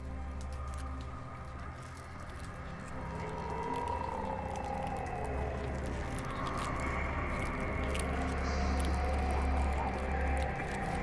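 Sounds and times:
eerie moaning tone: 0:00.0 - 0:11.0
low drone: 0:00.0 - 0:11.0.

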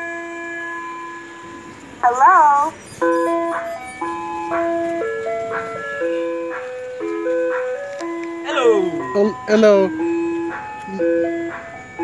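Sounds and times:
ice cream truck chime music: 0:00.0 - 0:12.0.

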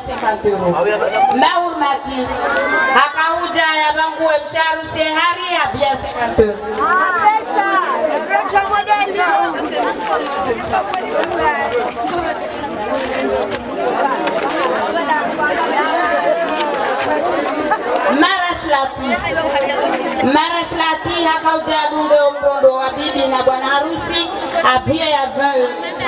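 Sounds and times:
people talking over one another: 0:00.0 - 0:26.0.

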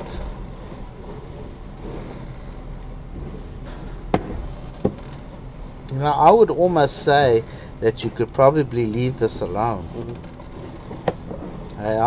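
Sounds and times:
steady low hum: 0:00.0 - 0:12.0
sharp knocks: 0:03.1 - 0:05.4.

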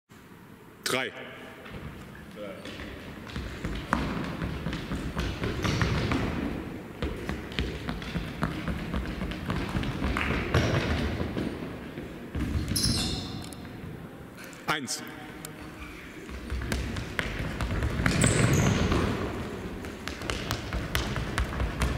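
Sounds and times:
sneakers pounding on hall floor: 0:01.6 - 0:14.0, 0:15.6 - 0:21.9
high sneaker squeak: 0:12.6 - 0:13.5, 0:18.0 - 0:19.3.

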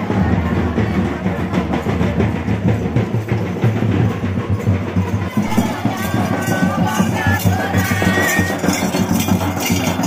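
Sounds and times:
dance drums beating steadily: 0:00.0 - 0:10.0
music: 0:00.0 - 0:10.0.

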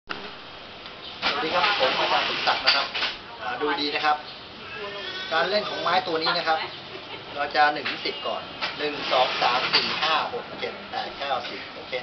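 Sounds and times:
steady background hiss: 0:00.2 - 0:12.0
man speaking: 0:05.3 - 0:06.7, 0:07.3 - 0:12.0.

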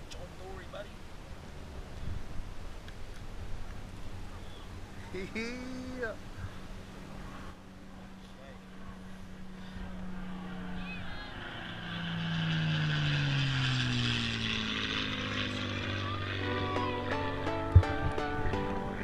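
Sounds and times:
motor humming by: 0:03.8 - 0:19.0
plucked-string music: 0:16.4 - 0:19.0.

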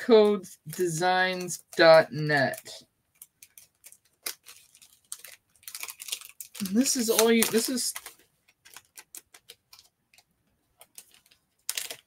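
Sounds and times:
paper and packaging clicks: 0:02.5 - 0:12.0.

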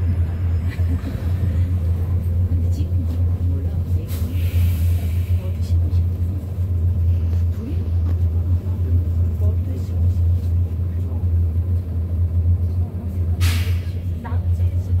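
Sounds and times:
bus rumble from inside: 0:00.0 - 0:15.0
short hiss: 0:13.4 - 0:14.0.

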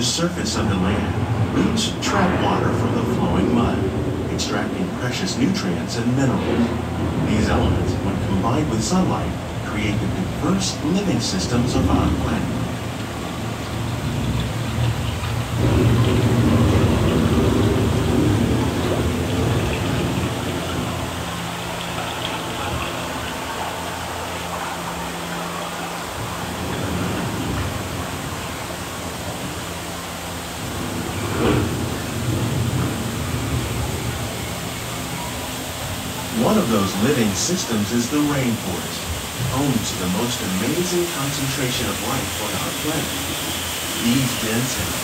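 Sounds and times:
rain hissing: 0:00.0 - 0:45.0
thunder rumbling: 0:00.0 - 0:45.0.

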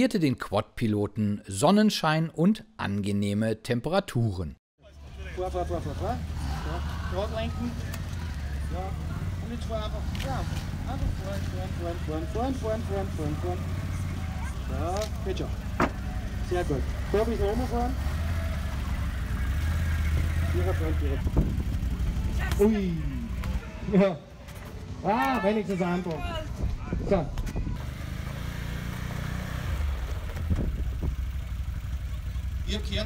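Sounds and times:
quad engine running at low revs: 0:05.0 - 0:23.7, 0:27.4 - 0:33.0.

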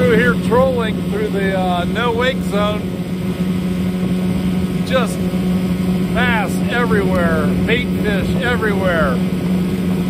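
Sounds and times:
boat motor humming: 0:00.0 - 0:10.0
water noise: 0:00.0 - 0:10.0.

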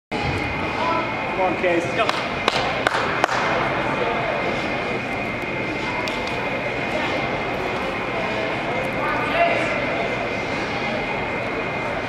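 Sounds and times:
background chatter: 0:00.1 - 0:12.0
steady hum: 0:00.1 - 0:12.0.

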